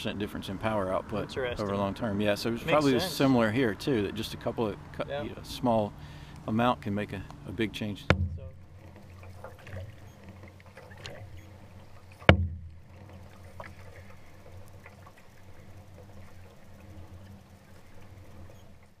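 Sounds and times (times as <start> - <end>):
steady low hum: 0.0 - 19.0
paddle splashes: 5.6 - 19.0
sharp knock: 8.0 - 8.6, 12.3 - 12.8.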